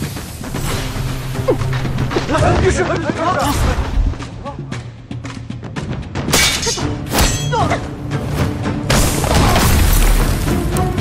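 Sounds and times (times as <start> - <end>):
dramatic film score: 0.0 - 11.0.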